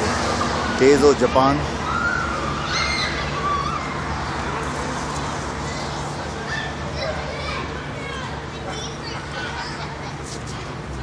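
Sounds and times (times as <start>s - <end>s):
outdoor background noise: 0.0s - 11.0s
children calling out: 1.7s - 11.0s.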